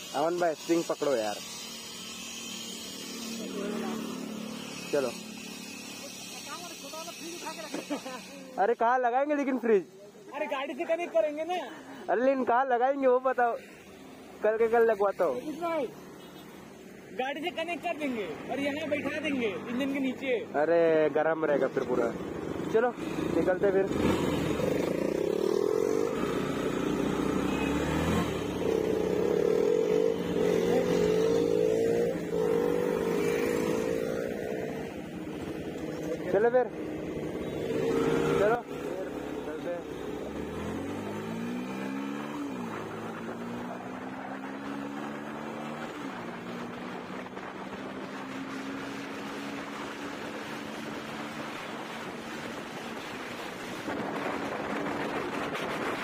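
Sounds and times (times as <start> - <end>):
motorcycle engine pulling away: 37.4 - 56.0.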